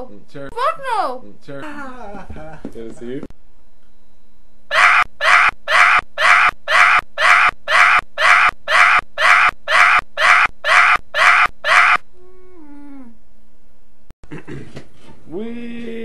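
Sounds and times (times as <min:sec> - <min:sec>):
steady low hum: 0:01.2 - 0:06.2
harsh screech-like cry: 0:04.7 - 0:12.0.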